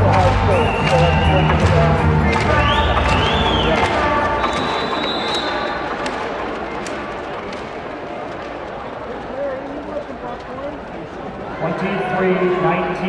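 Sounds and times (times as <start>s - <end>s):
music: 0.0s - 5.6s
crowd chatter: 0.0s - 13.0s.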